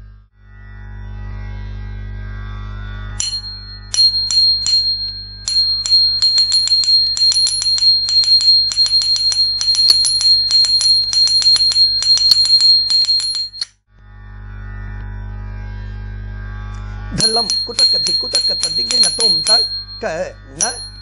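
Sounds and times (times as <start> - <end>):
small metal bells jingling: 3.2 - 13.7, 17.2 - 21.0
steady high ring: 3.2 - 13.7, 17.1 - 21.0.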